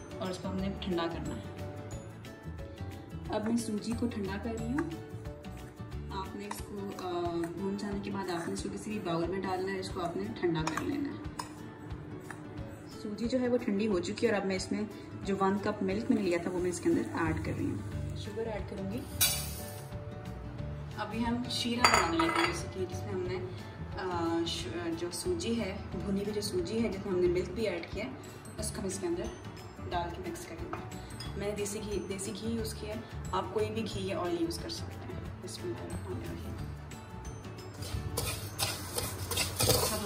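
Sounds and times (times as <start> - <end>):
background music: 0.0 - 40.0
sugar grains hitting a pan: 19.2 - 19.7, 38.2 - 40.0.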